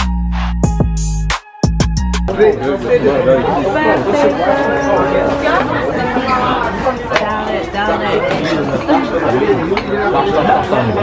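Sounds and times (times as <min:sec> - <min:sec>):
chatter of several voices: 0:02.3 - 0:11.0.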